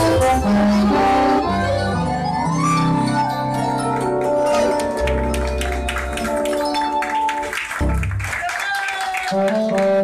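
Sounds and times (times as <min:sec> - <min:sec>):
deep bass notes: 0:00.0 - 0:06.6
accordion melody: 0:00.0 - 0:07.5, 0:09.4 - 0:10.0.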